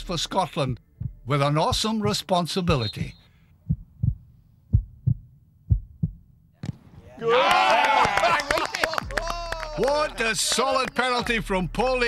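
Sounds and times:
heartbeat double thump: 0:01.0 - 0:06.3
football kicked knock: 0:06.6 - 0:06.9.

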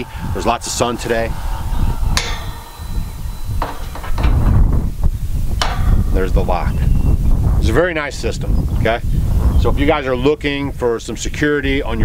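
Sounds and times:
wind rumble on microphone: 0:00.0 - 0:12.0
gate lock clunking: 0:02.2 - 0:04.7, 0:05.6 - 0:06.3.

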